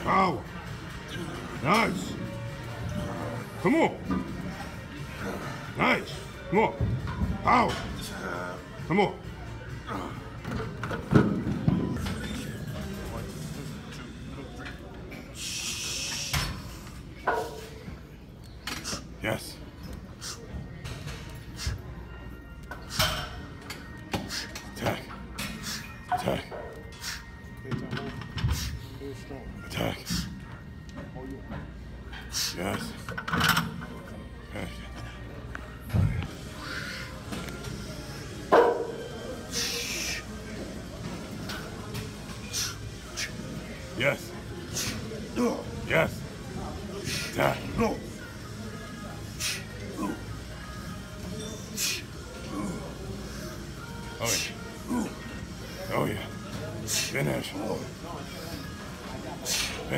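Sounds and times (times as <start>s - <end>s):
voices: 11.6s - 59.9s.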